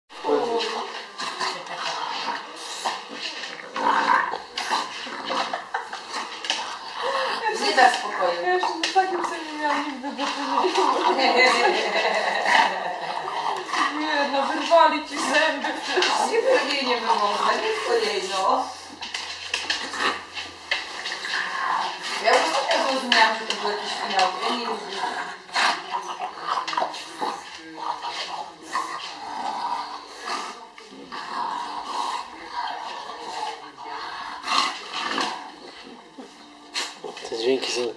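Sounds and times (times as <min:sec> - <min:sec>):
dog making play noises: 0:00.2 - 0:37.9
voices: 0:00.2 - 0:37.9.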